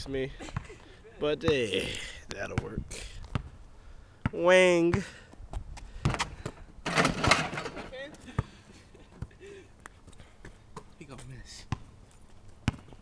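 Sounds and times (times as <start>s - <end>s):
ball clattering against hoop: 6.1s - 8.0s
basketball bouncing: 12.6s - 13.0s.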